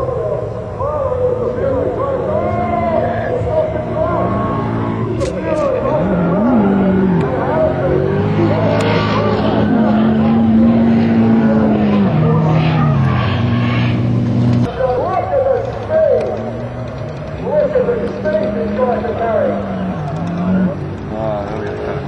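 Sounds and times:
car engine at high revs: 2.8 - 14.7, 16.0 - 22.0.

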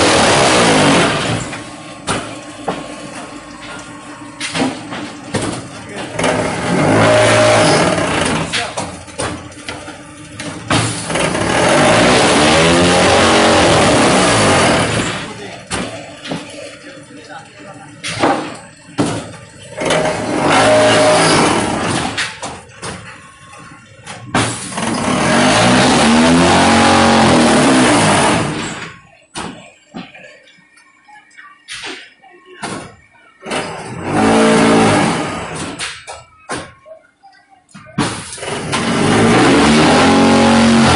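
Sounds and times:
brick making machine drone: 0.0 - 40.9
loud steady mechanical noise: 0.0 - 40.9.

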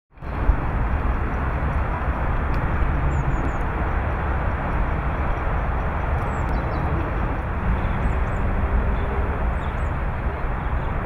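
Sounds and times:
low rumble with hiss: 0.2 - 11.0.

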